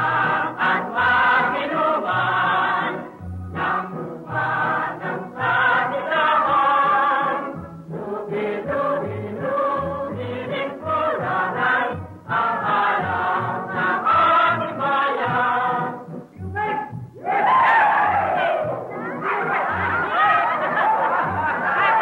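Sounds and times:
chorus singing with instruments: 0:00.0 - 0:18.8, 0:19.4 - 0:22.0.

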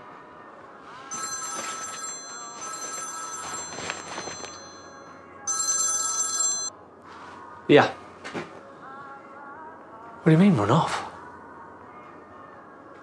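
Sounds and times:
smartphone ringtone: 0:01.1 - 0:06.8.

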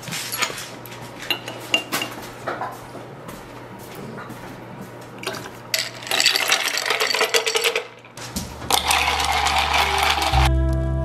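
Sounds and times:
glass jar rattling and clinking: 0:05.2 - 0:08.0, 0:08.7 - 0:10.5
music with organ-like notes: 0:09.4 - 0:11.0.

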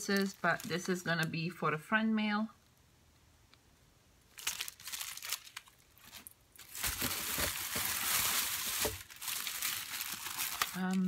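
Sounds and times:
plastic packaging crinkling: 0:00.0 - 0:01.3, 0:04.3 - 0:11.0.

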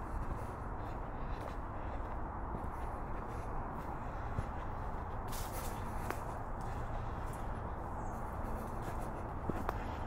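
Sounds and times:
footsteps on leafy dirt trail: 0:00.0 - 0:10.0.

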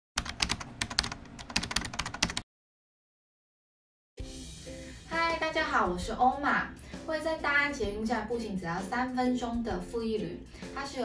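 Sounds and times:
computer keyboard typing: 0:00.2 - 0:02.4.

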